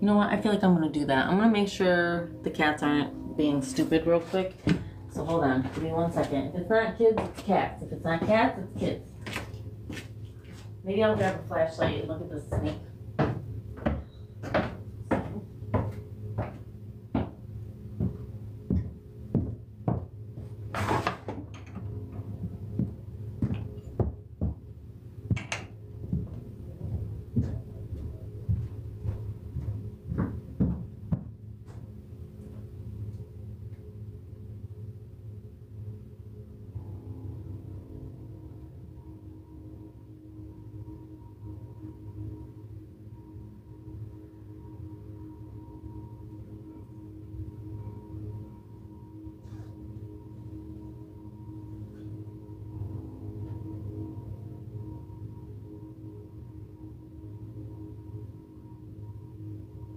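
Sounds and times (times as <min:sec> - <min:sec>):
low room hum: 0:00.0 - 0:59.9
soft held ambient tones: 0:00.0 - 0:59.9
knocks and thumps: 0:18.0 - 0:20.1.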